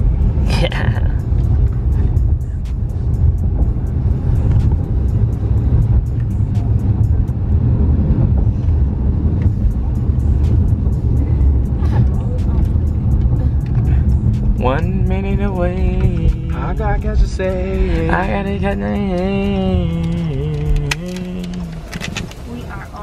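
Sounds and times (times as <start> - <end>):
car driving rumble: 0.0 - 23.0
car stereo music with deep bass: 0.0 - 23.0.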